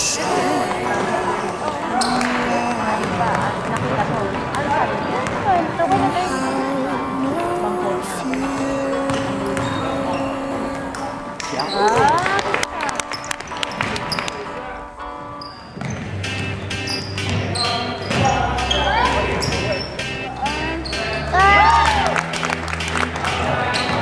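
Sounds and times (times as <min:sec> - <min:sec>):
voices: 0:00.0 - 0:15.4
background music: 0:00.0 - 0:24.0
sneakers squeaking: 0:00.3 - 0:07.6, 0:08.6 - 0:12.4, 0:13.0 - 0:21.2, 0:23.7 - 0:24.0
basketball bouncing: 0:02.9 - 0:06.1, 0:09.1 - 0:09.8.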